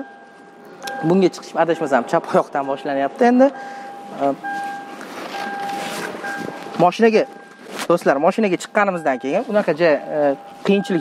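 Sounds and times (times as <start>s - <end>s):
car warning chime beeping: 0.0s - 11.0s.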